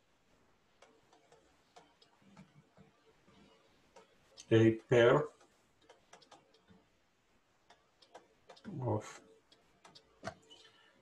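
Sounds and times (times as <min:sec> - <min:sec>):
stylus ticking on tablet: 0:00.7 - 0:07.0, 0:07.6 - 0:10.8.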